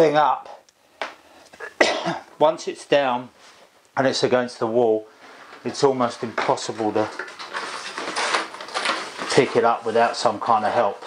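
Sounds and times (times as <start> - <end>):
plastic straps rustling and scraping: 5.2 - 11.0.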